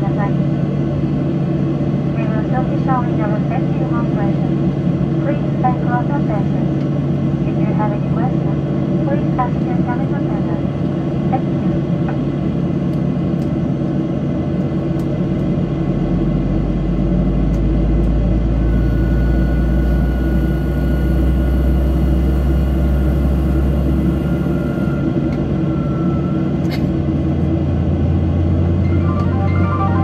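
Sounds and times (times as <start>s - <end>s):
jet engines idling: 0.0s - 30.0s.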